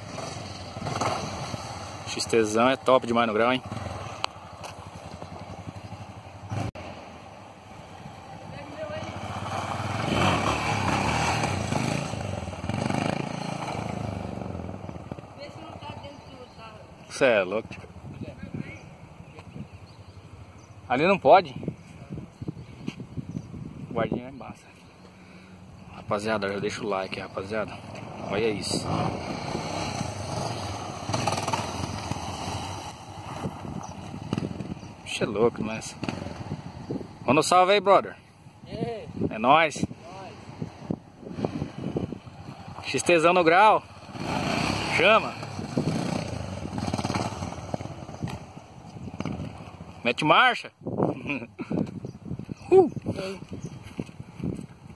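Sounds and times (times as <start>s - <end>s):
motorcycle engine revving past: 0.0s - 7.2s, 7.8s - 17.8s, 26.6s - 37.0s, 40.0s - 50.0s.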